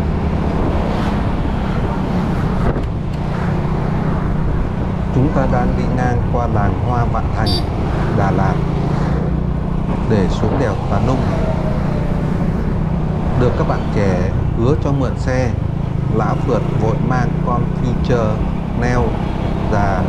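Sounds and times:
motorcycle engine hum: 0:00.0 - 0:20.0
wind and road noise: 0:00.0 - 0:20.0
person speaking: 0:05.2 - 0:08.6.

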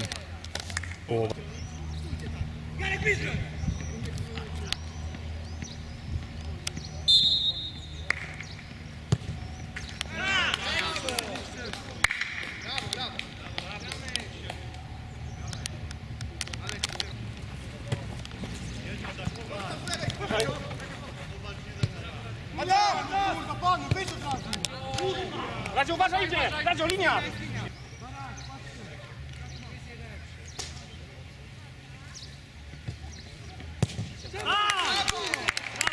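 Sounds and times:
referee's whistle blast: 0:07.1 - 0:07.9
players shouting: 0:09.3 - 0:15.0, 0:18.9 - 0:28.9, 0:34.3 - 0:35.9
ball being kicked: 0:33.8 - 0:34.2.

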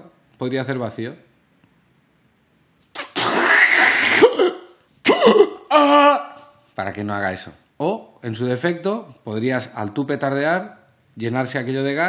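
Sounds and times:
man making rasping mouth noise: 0:02.9 - 0:04.4.

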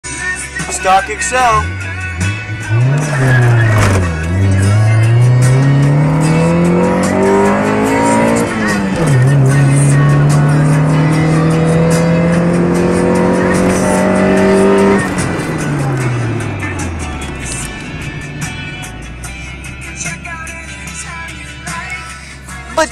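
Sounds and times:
music: 0:00.0 - 0:22.9
car engine accelerating hard: 0:01.6 - 0:22.9.

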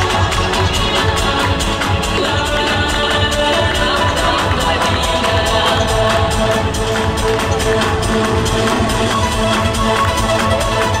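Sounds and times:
dance music with steady beat: 0:00.0 - 0:11.0.

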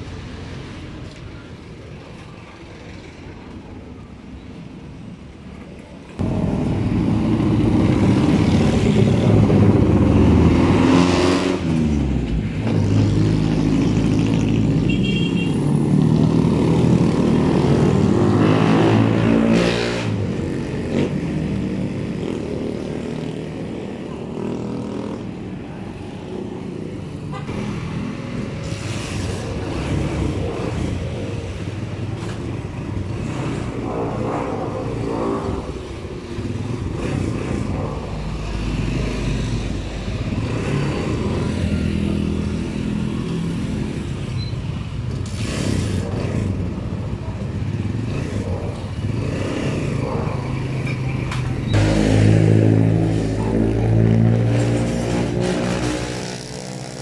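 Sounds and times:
street traffic: 0:00.0 - 0:57.0
motorcycle engine revving: 0:44.8 - 0:57.0.

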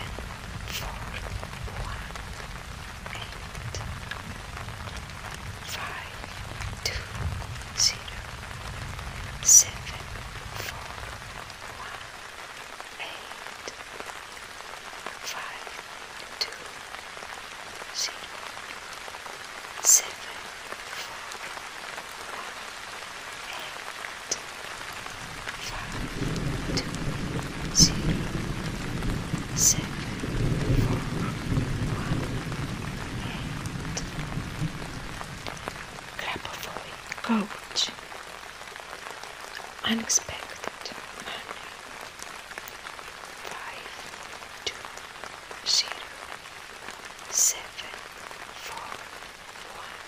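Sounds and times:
low thunder rumble: 0:00.0 - 0:12.1, 0:25.1 - 0:37.7
steady rain: 0:00.0 - 0:50.0.

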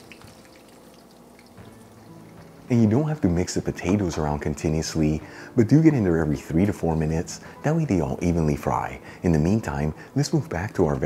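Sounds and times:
potato slices sizzling in oil: 0:00.0 - 0:02.7.

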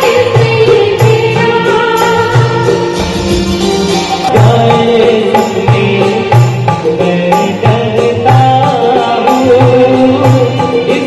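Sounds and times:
instrumental backing: 0:00.0 - 0:11.0
man singing through microphone: 0:04.0 - 0:11.0.

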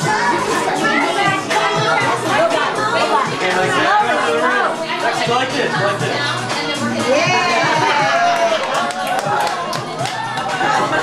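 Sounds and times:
chatter of voices: 0:00.0 - 0:11.0
music playing: 0:00.0 - 0:11.0.

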